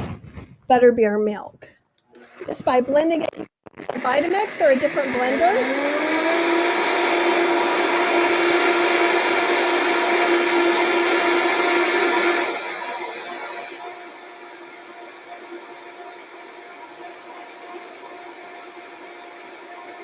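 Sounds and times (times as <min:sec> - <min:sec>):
blender motor whine: 0:02.0 - 0:20.0.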